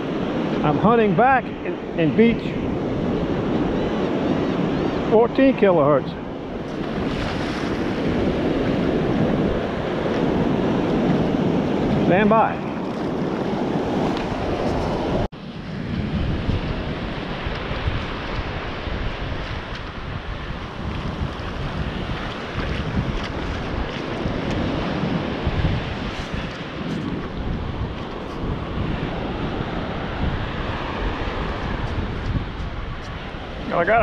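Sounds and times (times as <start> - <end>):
wind buffeting microphone: 0.0 - 34.0
surf washing over wet sand: 5.0 - 34.0.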